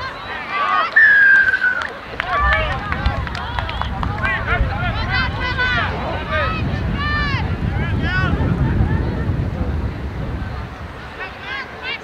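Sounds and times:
crowd shouting: 0.0s - 8.6s
referee's whistle: 0.9s - 1.9s.

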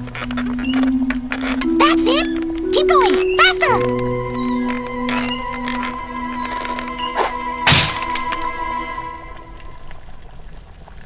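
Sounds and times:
background music with held notes: 0.0s - 10.3s
wooden cage crashing and breaking: 7.2s - 8.5s.

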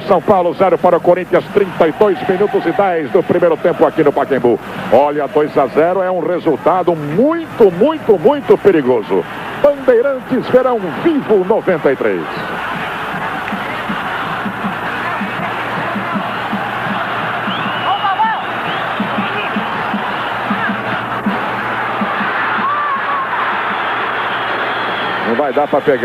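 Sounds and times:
stadium crowd noise: 0.0s - 26.0s
regular drumbeat: 12.4s - 24.1s
shouts and whistles: 16.0s - 20.8s, 22.0s - 26.0s.

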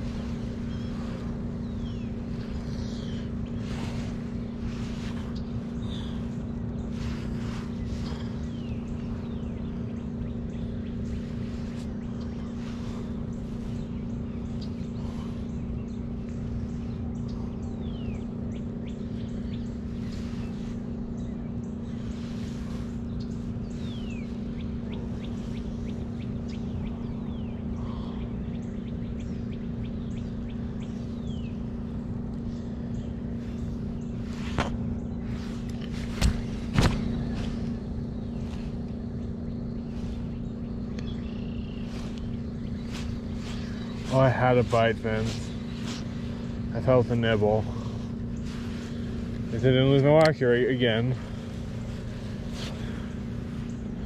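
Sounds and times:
faint bird chirps: 0.0s - 54.0s
steady low hum: 0.0s - 54.0s.

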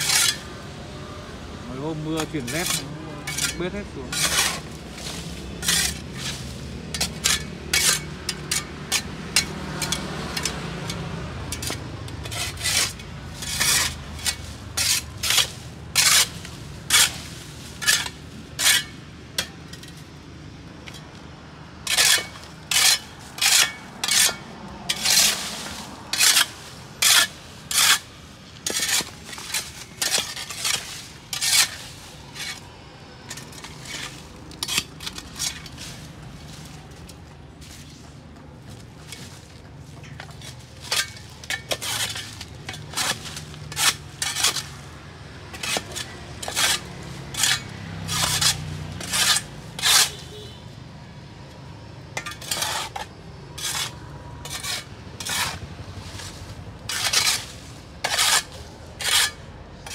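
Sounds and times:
shovel scraping leaves off stone: 0.0s - 0.6s, 1.7s - 20.2s, 21.8s - 50.5s, 52.2s - 59.9s.

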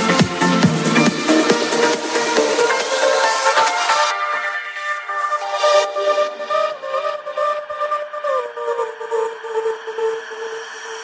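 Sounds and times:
trance synth lead: 0.0s - 11.0s.

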